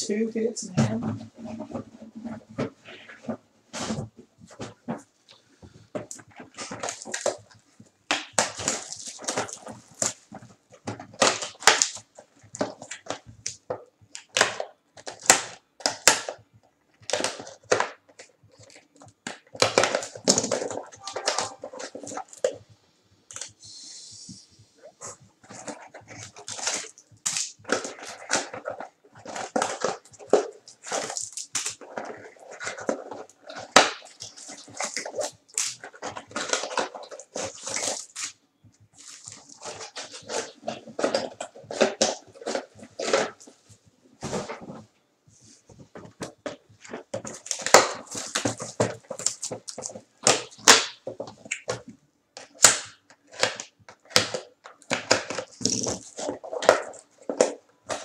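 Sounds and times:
cardboard boxes rustling: 0:00.8 - 0:13.3, 0:39.0 - 0:51.9
plastic shrink wrap crinkling: 0:01.3 - 0:23.6, 0:24.8 - 0:58.0.

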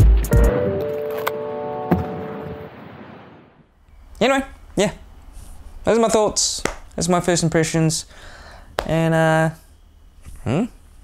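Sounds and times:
background music ending: 0:00.0 - 0:03.4.

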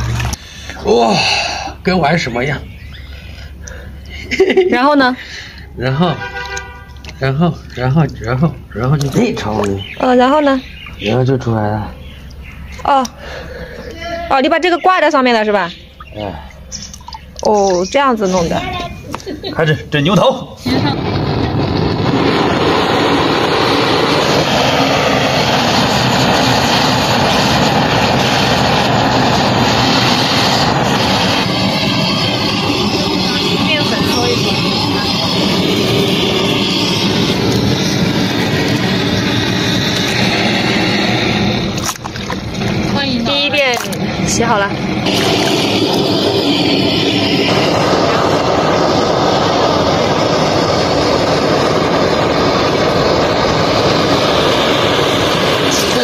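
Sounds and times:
blowtorch flame rushing: 0:18.5 - 0:56.0.

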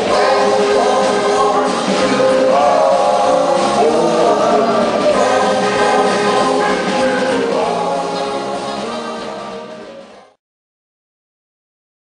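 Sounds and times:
bass guitar: 0:00.0 - 0:10.4
drums: 0:00.0 - 0:10.4
vocal group singing close harmony: 0:00.0 - 0:10.4.

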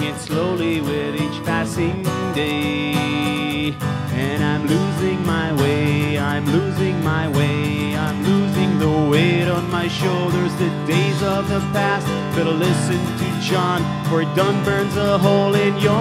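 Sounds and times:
acoustic guitar strumming: 0:00.0 - 0:16.0
man singing long notes: 0:00.0 - 0:16.0.

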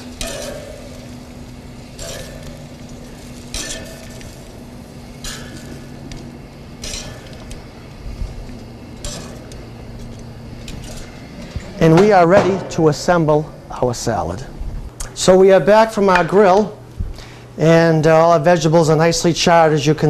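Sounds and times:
metal tongs clinking on grill: 0:00.0 - 0:11.7
steady low hum: 0:00.0 - 0:20.0.

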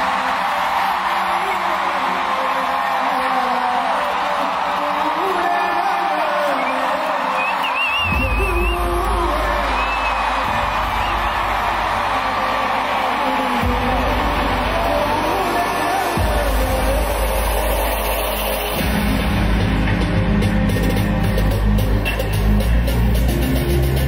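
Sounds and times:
crowd cheering and whistling: 0:00.0 - 0:24.0
live concert intro music: 0:00.0 - 0:24.0.

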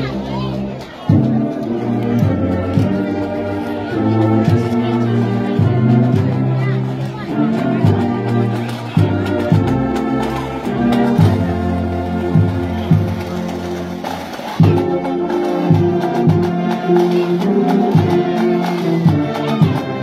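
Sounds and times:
brass band playing a hymn: 0:00.0 - 0:20.0.

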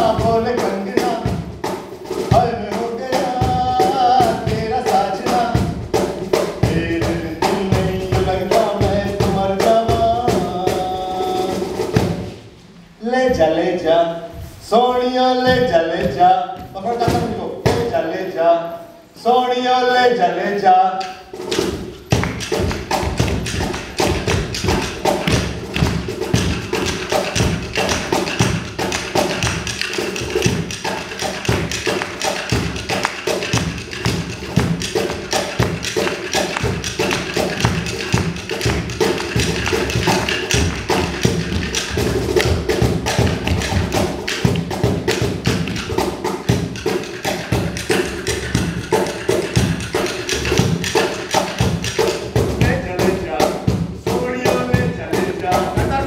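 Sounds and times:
cajon drum slapped by hand: 0:15.5 - 0:18.0, 0:21.0 - 0:56.0.

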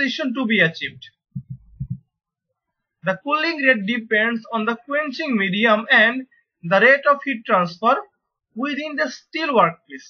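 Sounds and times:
soft low thumps: 0:01.3 - 0:02.0.

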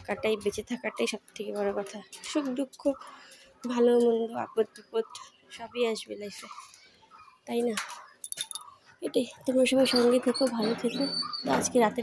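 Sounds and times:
woman speaking: 0:00.0 - 0:06.7, 0:09.0 - 0:12.0
metallic jingle of small pieces: 0:08.2 - 0:08.8.

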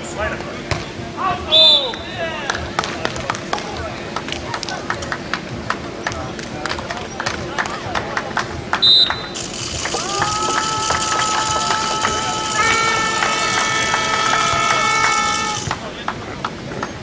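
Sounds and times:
held steady tones: 0:09.4 - 0:15.8
referee's whistle blast: 0:10.8 - 0:15.7.

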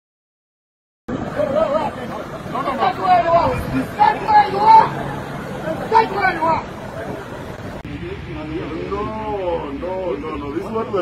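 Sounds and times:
people talking and calling out: 0:01.1 - 0:11.0
steady background noise: 0:01.1 - 0:11.0.

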